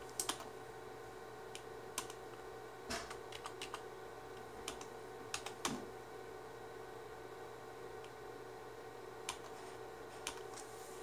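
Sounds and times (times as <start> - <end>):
keyboard typing clicks: 0.2 - 0.5, 2.0 - 2.2, 2.9 - 3.8, 4.6 - 5.8.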